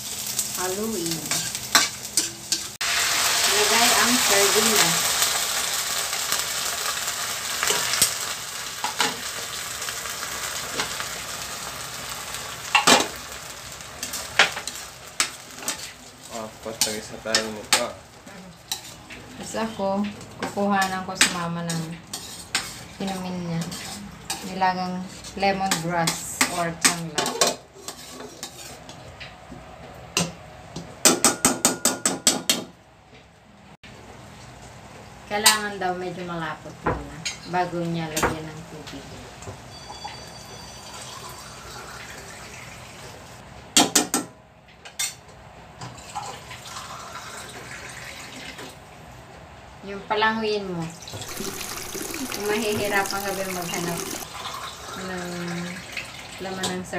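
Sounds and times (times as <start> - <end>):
food sizzling in oil: 0.0 - 26.8, 39.7 - 43.4, 51.1 - 56.9
spatula scraping a steel wok: 18.7 - 19.0, 21.7 - 26.3, 27.7 - 29.0.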